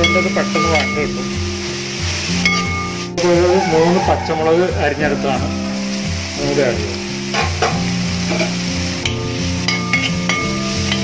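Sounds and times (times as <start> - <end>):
food sizzling in hot oil: 0.0 - 11.0
low background music: 0.0 - 11.0
ladle scraping a pan: 7.0 - 11.0.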